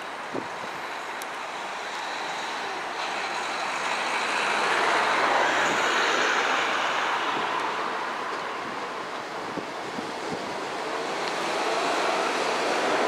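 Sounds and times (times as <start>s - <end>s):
electric train wheels on rail: 0.0s - 13.0s.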